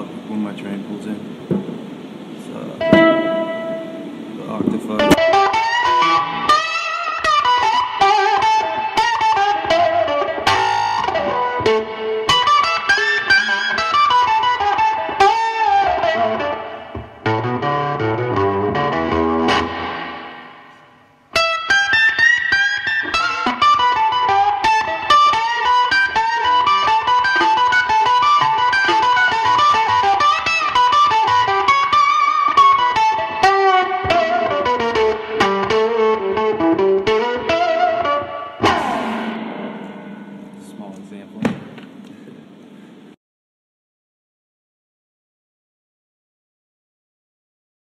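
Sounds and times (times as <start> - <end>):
electric blues guitar: 1.2 - 40.6.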